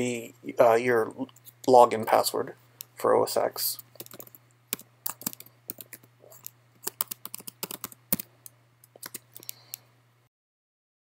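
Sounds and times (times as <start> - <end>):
computer keyboard typing: 3.9 - 9.8.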